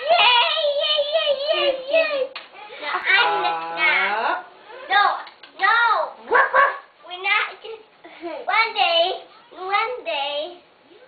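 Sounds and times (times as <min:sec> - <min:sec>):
child's playful vocal calls: 0:00.0 - 0:07.9.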